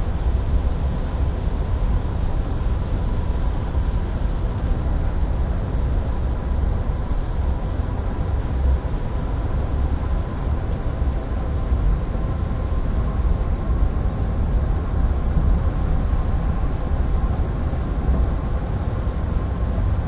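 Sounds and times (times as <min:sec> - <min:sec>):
vehicle road and engine drone: 0:00.0 - 0:20.0.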